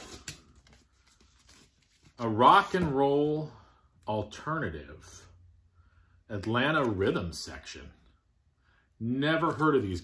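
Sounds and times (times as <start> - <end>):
record sleeves rustling: 0.0 - 3.5, 9.2 - 10.0.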